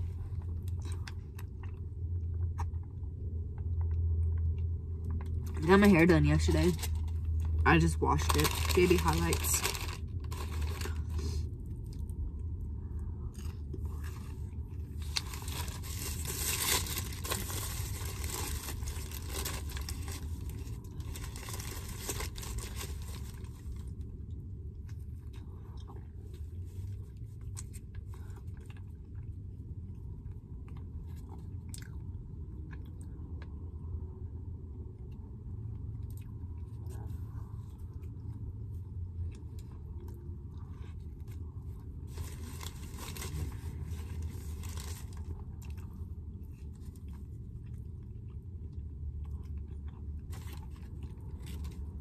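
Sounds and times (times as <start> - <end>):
steady low hum: 0.0 - 52.0
paper wrapper rustling: 8.2 - 11.2, 15.0 - 23.8, 42.1 - 45.3.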